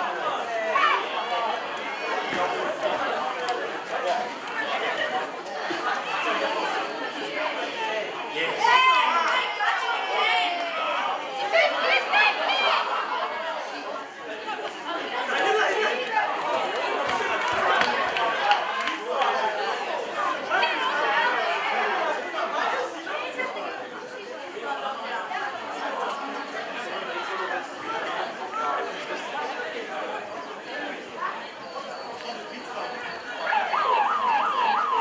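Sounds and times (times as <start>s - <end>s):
indistinct chatter of people: 0.0s - 35.0s.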